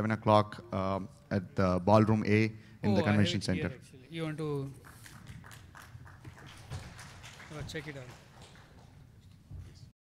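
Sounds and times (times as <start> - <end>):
faint hall room noise: 0.0 - 10.0.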